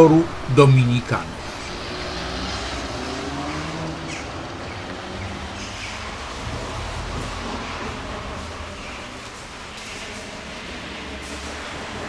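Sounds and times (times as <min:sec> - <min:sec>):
car engine passing: 0:00.0 - 0:12.0
low rumble of traffic: 0:00.0 - 0:12.0.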